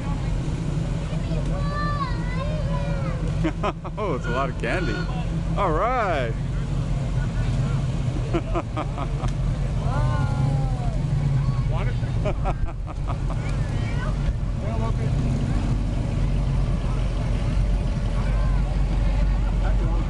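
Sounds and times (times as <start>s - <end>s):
car engines driving slowly: 0.0s - 20.0s
onlookers' voices: 0.0s - 20.0s.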